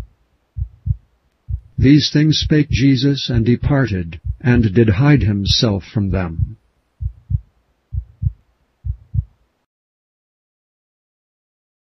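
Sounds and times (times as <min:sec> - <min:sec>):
heartbeat thumps: 0:00.0 - 0:09.4.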